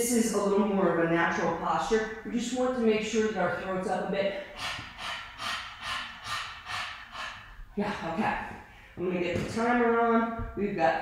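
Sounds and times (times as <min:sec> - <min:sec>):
person panting hard: 0:04.4 - 0:07.8.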